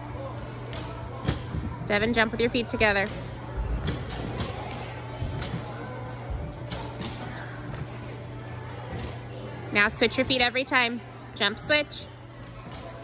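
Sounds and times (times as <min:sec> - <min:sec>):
gym hubbub: 0:00.0 - 0:13.0.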